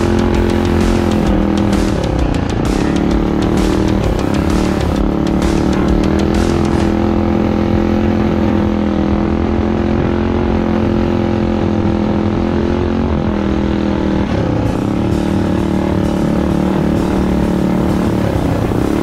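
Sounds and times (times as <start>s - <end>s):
minibike engine running: 0.0s - 19.0s.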